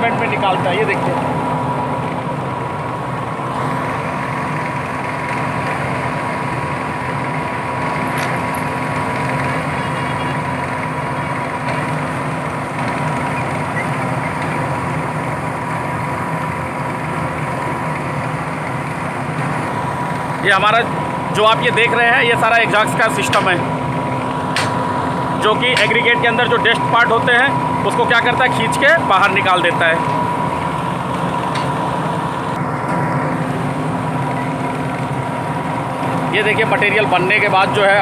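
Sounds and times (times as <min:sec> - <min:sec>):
machine drone with hum: 0:00.0 - 0:38.0.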